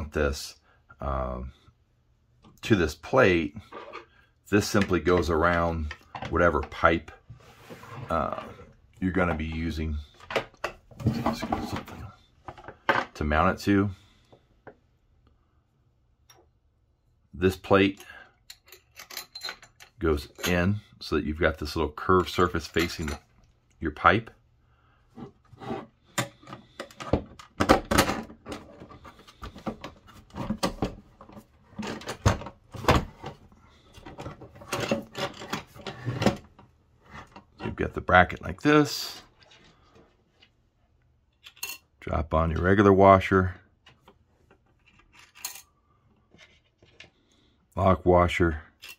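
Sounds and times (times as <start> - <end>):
man talking: 0.0 - 1.6, 2.6 - 3.6, 4.5 - 7.2, 8.0 - 10.2, 13.1 - 14.0, 17.4 - 18.2, 20.0 - 23.2, 23.8 - 24.4, 37.6 - 39.3, 42.0 - 43.6, 47.8 - 48.7
knocks and clunks of metal parts: 26.1 - 36.6.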